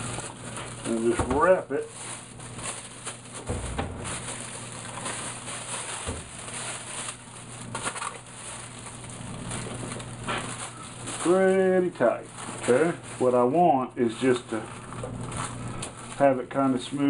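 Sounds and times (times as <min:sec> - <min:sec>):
space blanket crinkling: 0:00.0 - 0:13.6, 0:14.2 - 0:16.3
steady low hum: 0:00.0 - 0:17.0.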